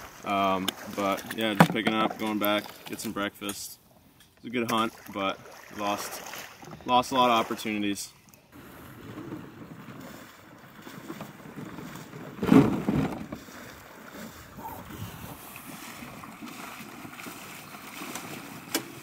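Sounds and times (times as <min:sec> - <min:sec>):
water sloshing around waders: 0:00.0 - 0:19.0
loud thump: 0:12.4 - 0:13.4.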